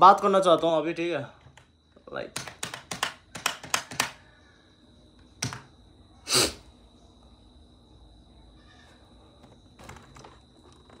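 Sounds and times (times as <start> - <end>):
short hiss-like noise: 6.3 - 6.7.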